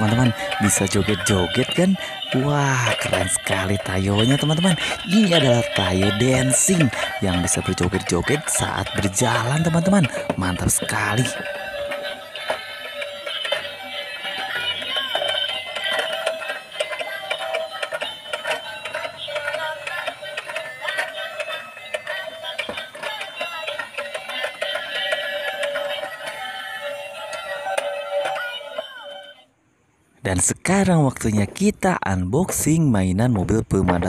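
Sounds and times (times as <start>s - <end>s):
toy bus electronic music: 0.0s - 29.6s.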